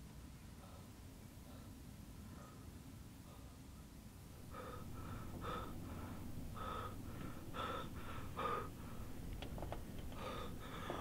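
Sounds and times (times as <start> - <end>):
man breathing hard: 0.5 - 3.8, 4.4 - 11.0.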